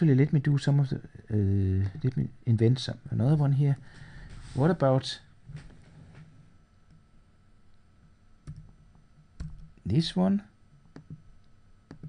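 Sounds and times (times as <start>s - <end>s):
computer keyboard keystrokes: 8.4s - 8.8s, 9.4s - 9.7s, 10.9s - 11.2s.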